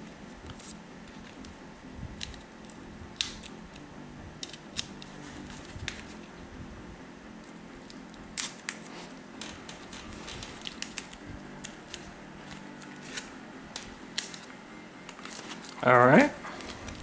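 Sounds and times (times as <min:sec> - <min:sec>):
knife slitting packing tape: 0:02.2 - 0:03.5, 0:04.4 - 0:06.2, 0:07.4 - 0:15.8
cardboard cracking and crinkling: 0:07.9 - 0:14.5.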